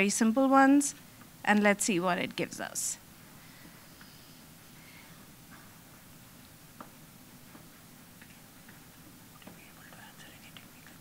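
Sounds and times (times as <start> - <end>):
faint whispering and low voices: 9.4 - 11.0.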